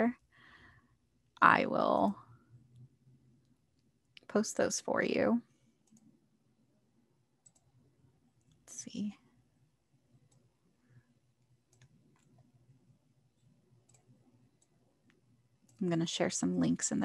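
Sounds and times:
computer mouse and keyboard clicks: 5.8 - 6.2, 7.4 - 7.8, 10.2 - 10.5, 11.4 - 12.6, 13.4 - 15.8.

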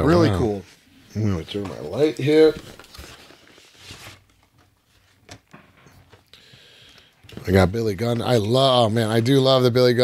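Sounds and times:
soft plastic rustle: 0.7 - 5.2.

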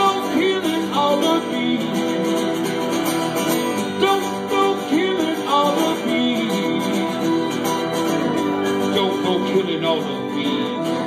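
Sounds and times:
acoustic guitar strumming: 0.0 - 11.0
keyboard sustained notes: 0.0 - 11.0.

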